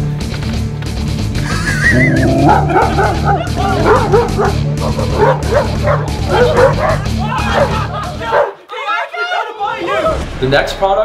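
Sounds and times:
background music: 0.0s - 11.0s
dog barking and yelping: 2.2s - 8.6s.

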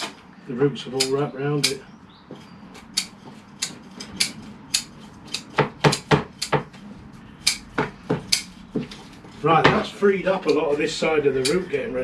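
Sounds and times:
metal tools clicking and scraping: 1.0s - 6.6s, 8.3s - 9.6s, 10.3s - 12.0s.

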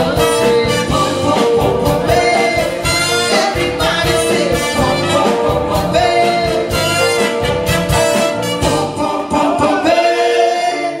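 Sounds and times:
live band with horns and singers: 0.0s - 11.0s.

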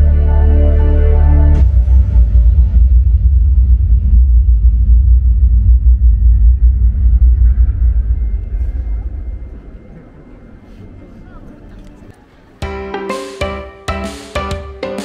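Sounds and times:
deep bass rumble over loudspeakers: 0.0s - 11.7s.

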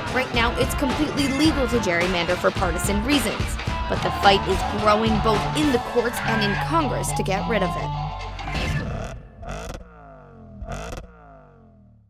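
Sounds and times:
low hum: 8.0s - 12.0s.

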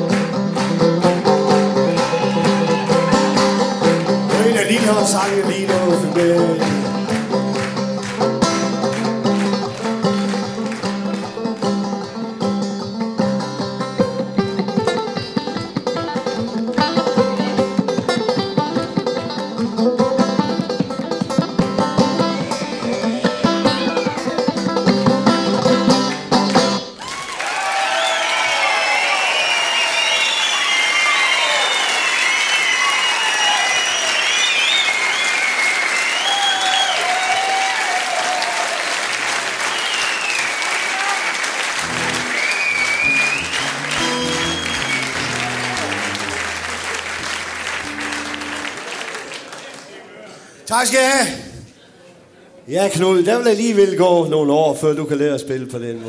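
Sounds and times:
audience applause: 0.0s - 12.0s, 26.1s - 50.3s
banjo picking with band: 0.0s - 27.0s, 41.8s - 49.3s
low plucked notes: 2.9s - 26.9s, 41.8s - 48.9s
whistling: 27.9s - 37.5s, 39.5s - 41.0s, 42.0s - 46.4s.

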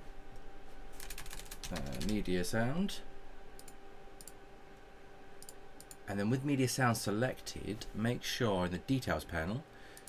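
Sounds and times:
faint steady hum: 0.0s - 10.0s
computer keyboard typing: 1.0s - 2.2s.

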